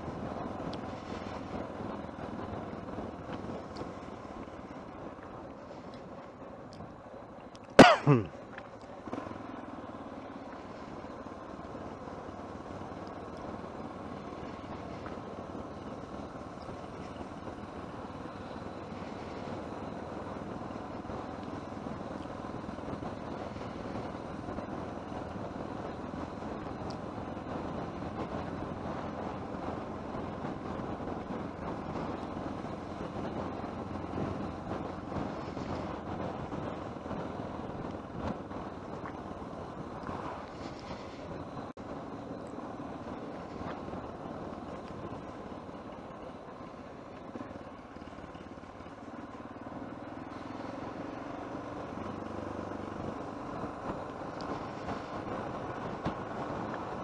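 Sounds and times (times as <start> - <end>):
vehicle engine and road noise: 0.0 - 57.0.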